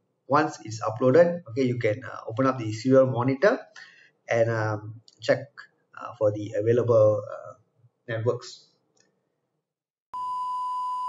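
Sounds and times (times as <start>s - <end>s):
high test tone beep: 10.1s - 11.0s.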